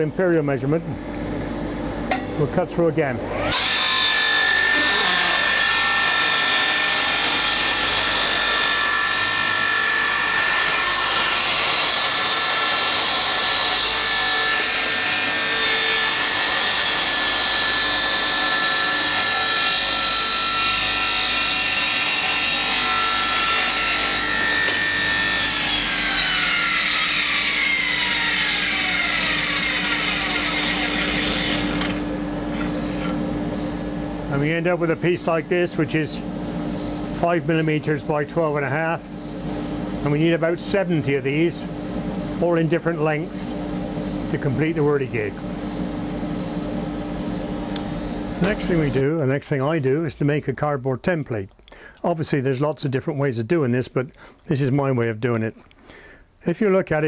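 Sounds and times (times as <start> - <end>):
saw blade spinning down: 3.3 - 32.1
table saw ripping wood: 3.4 - 32.7.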